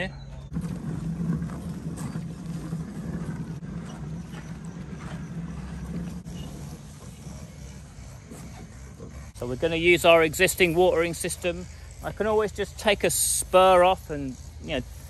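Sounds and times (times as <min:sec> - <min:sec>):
wheelbarrow wheel rumbling: 0:00.3 - 0:15.0.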